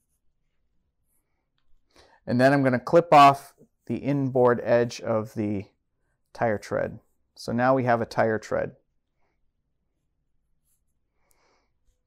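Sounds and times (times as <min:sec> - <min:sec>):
pencil scratching on paper: 0:00.0 - 0:01.4, 0:10.0 - 0:11.1.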